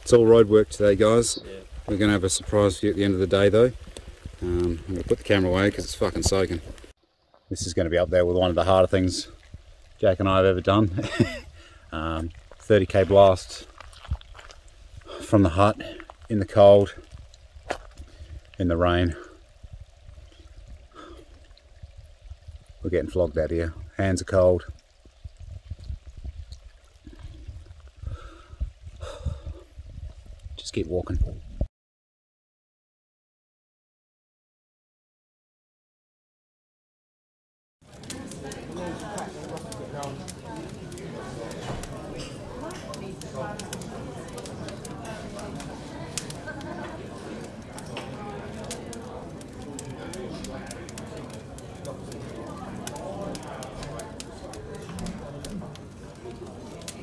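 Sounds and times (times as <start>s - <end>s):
wood fire crackling: 0.0s - 31.6s, 37.8s - 57.0s
rain and wind on microphone: 0.0s - 31.7s, 37.8s - 57.0s
murmur of voices: 37.9s - 57.0s.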